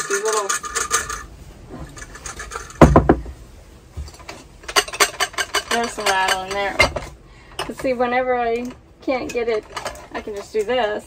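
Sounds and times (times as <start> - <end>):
heavy knock of dish crate: 2.8 - 3.4
dishes clinking: 4.0 - 8.0.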